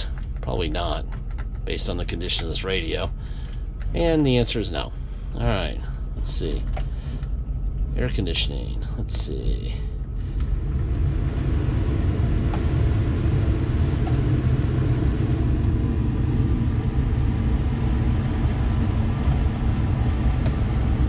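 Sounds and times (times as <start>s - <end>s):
truck engine idling: 0.0s - 11.7s
air conditioning blower rushing: 0.0s - 21.0s.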